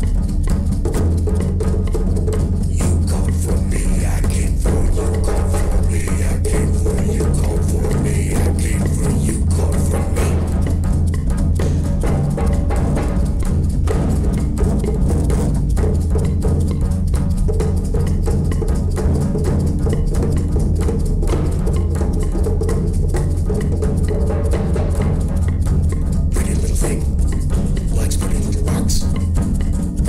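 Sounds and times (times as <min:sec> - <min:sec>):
found-object percussion: 0:00.0 - 0:30.0
sustained low bass: 0:00.0 - 0:30.0.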